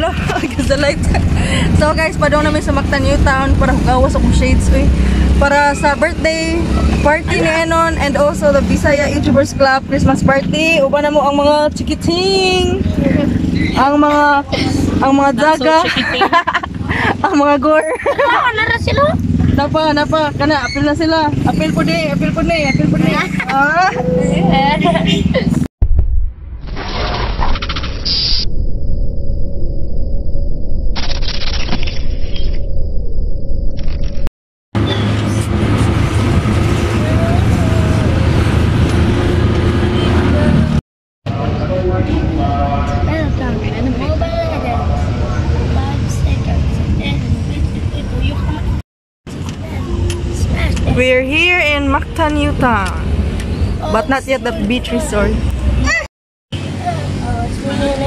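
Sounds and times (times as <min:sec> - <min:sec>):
car engine running: 0:00.0 - 0:25.6
road noise: 0:00.0 - 0:25.7, 0:33.7 - 0:58.0
voices talking: 0:00.0 - 0:25.7, 0:34.8 - 0:38.6, 0:41.3 - 0:48.8, 0:49.4 - 0:58.0.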